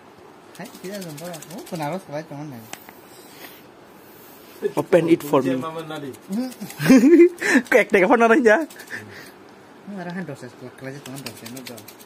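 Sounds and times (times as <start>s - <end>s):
rapid clicks: 0.5s - 2.0s, 5.6s - 9.1s, 11.0s - 12.0s
man murmuring: 6.2s - 7.9s.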